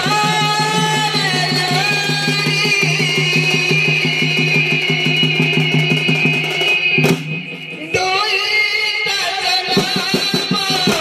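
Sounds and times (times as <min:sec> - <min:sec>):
fast drum beat: 0:00.0 - 0:11.0.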